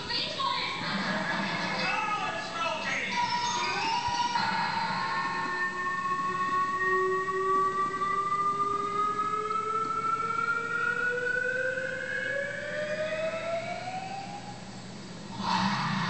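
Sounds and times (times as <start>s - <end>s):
rising siren-like tone: 3.2s - 16.0s.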